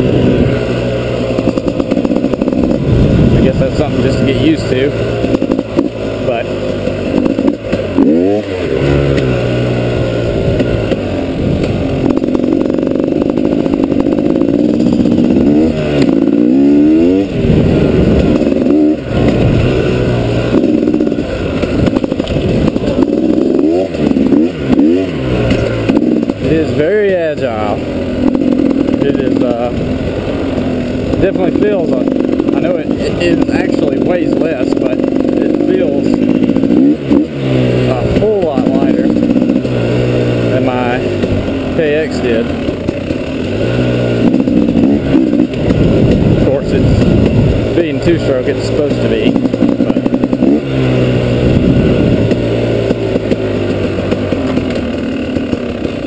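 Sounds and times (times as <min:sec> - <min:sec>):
dirt bike engine revving: 0:00.0 - 0:56.0.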